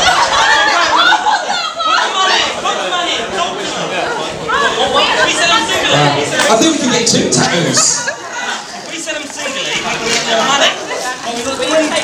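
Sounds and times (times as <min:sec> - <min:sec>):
excited crowd shouting and chattering: 0:00.0 - 0:12.0.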